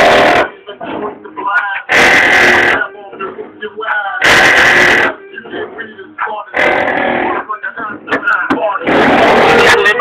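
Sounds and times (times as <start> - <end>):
music on car stereo: 0.0 - 10.0.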